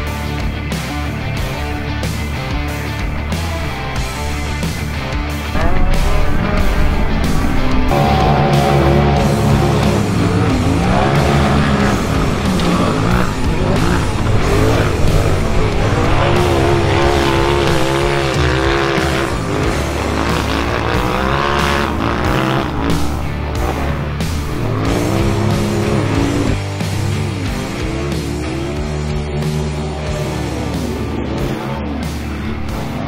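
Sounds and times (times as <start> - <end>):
loud rock music: 0.0 - 33.0
race car engines revving: 0.0 - 33.0.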